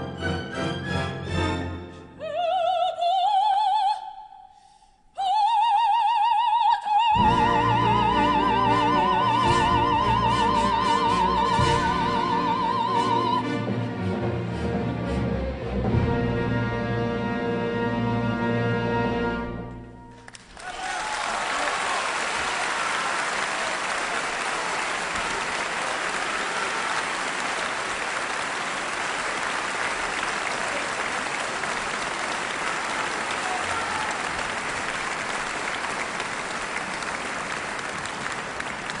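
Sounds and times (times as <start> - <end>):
audience applauding: 20.2 - 39.0.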